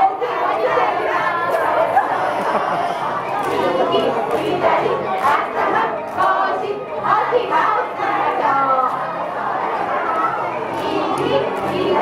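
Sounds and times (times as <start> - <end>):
crowd shouting and calling out: 0.0 - 12.0.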